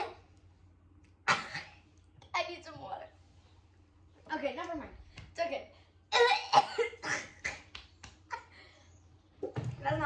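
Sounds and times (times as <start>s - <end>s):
girl coughing: 1.3s - 1.8s, 6.1s - 7.7s.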